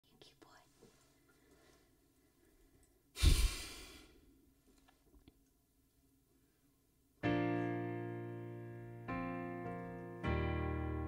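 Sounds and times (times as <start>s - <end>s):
breath blown into microphone: 3.2s - 4.3s.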